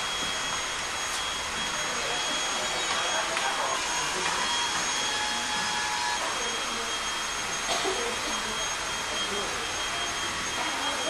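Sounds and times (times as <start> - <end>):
electric blower motor whining: 0.0 - 11.0.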